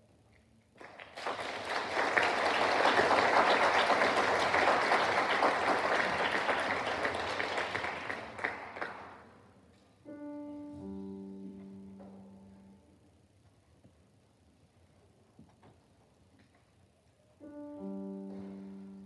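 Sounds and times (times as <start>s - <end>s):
audience applauding: 0.8s - 9.2s.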